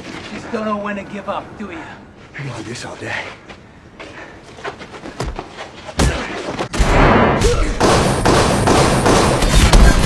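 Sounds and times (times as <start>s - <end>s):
gunfire: 6.1s - 10.0s.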